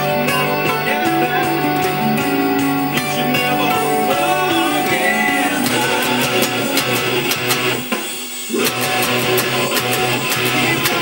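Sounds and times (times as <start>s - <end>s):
electric guitar playing: 0.0s - 8.0s, 8.6s - 11.0s
band recording with sharp hits: 0.0s - 11.0s.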